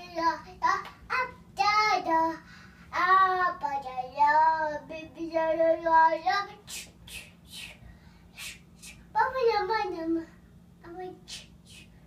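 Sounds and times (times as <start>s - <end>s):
child singing: 0.0s - 6.9s, 8.9s - 11.9s.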